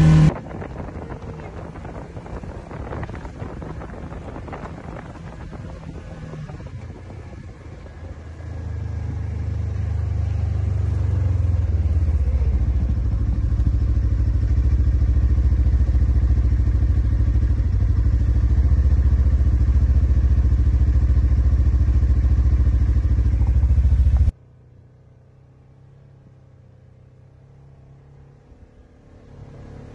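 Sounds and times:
utility vehicle engine running: 0:00.0 - 0:29.9.

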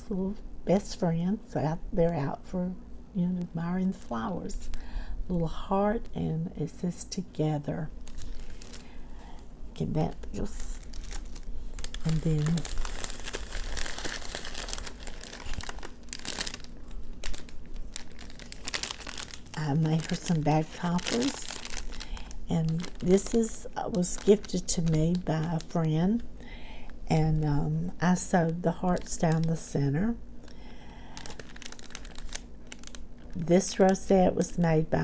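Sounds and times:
cellophane bag crinkling: 0:08.0 - 0:26.3, 0:30.4 - 0:34.6
paper shred rustling: 0:10.2 - 0:25.7, 0:31.2 - 0:33.0.

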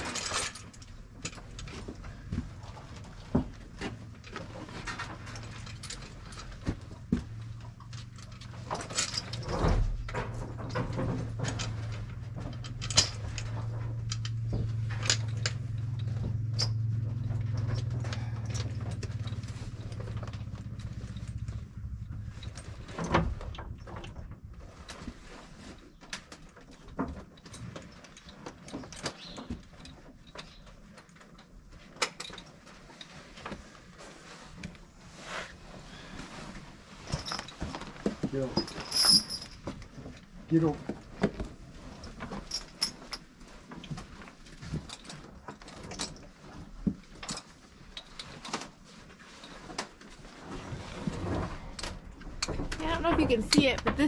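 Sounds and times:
harness hardware clinking: 0:00.0 - 0:24.2, 0:36.9 - 0:48.5
low steady hum: 0:00.0 - 0:25.8.

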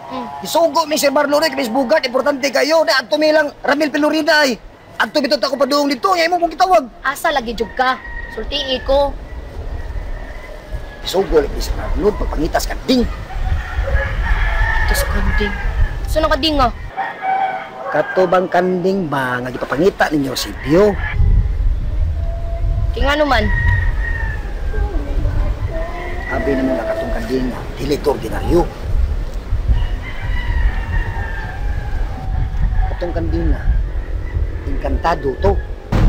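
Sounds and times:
rooster crowing: 0:07.6 - 0:12.5, 0:13.1 - 0:18.8, 0:20.4 - 0:28.6, 0:29.6 - 0:36.0
steady low rumble: 0:35.8 - 0:36.0.

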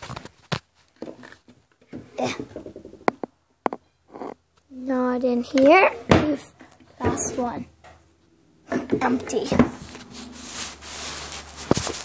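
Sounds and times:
sharp clicks and knocks: 0:00.0 - 0:04.4
handling noise rustling: 0:08.8 - 0:12.0.

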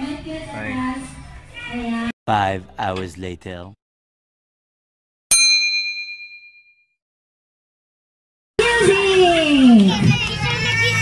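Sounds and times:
bright bell ding: 0:05.3 - 0:06.9.

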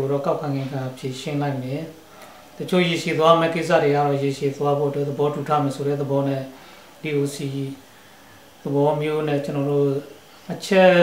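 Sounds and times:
man speaking: 0:00.0 - 0:02.0, 0:02.6 - 0:07.8, 0:08.6 - 0:11.0.

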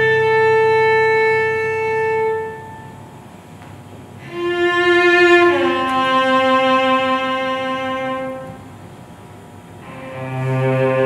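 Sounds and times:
cello holding a high note: 0:00.0 - 0:03.0, 0:04.2 - 0:08.7, 0:09.8 - 0:11.0.

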